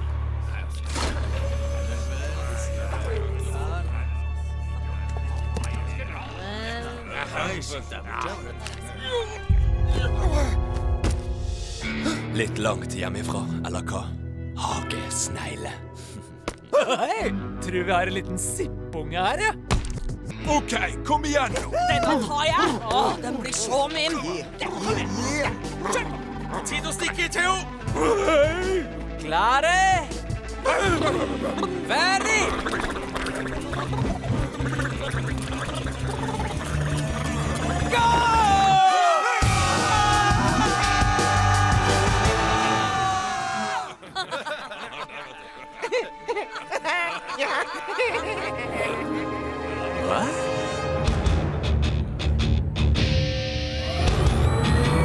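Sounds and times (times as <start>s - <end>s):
background music: 0.0s - 55.0s
man shouting long: 21.7s - 22.7s, 37.7s - 43.9s.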